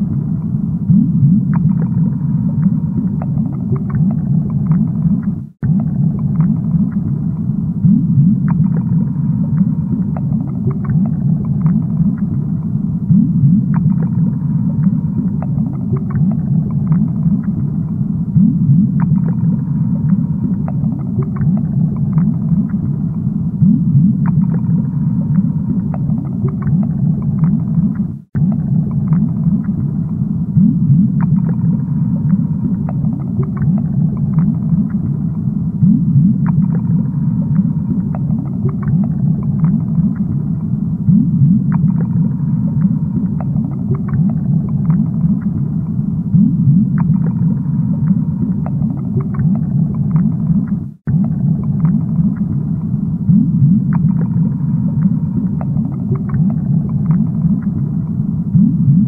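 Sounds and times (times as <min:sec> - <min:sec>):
low underwater rumble: 0:00.0 - 0:59.0.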